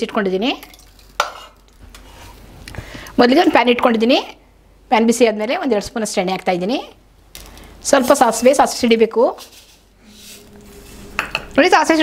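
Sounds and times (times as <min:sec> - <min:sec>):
ladle stirring in a pot: 0:00.6 - 0:02.5, 0:09.3 - 0:11.6.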